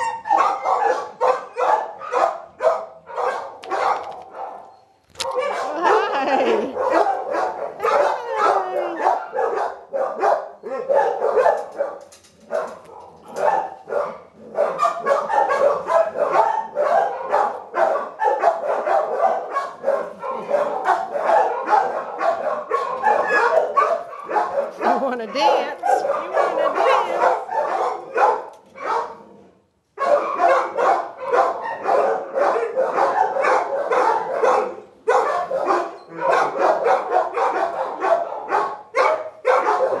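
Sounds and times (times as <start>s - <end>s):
dogs barking: 0.0s - 40.0s.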